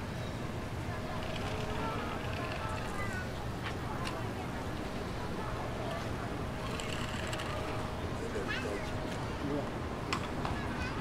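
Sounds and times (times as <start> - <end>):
market ambience: 0.0 - 11.0.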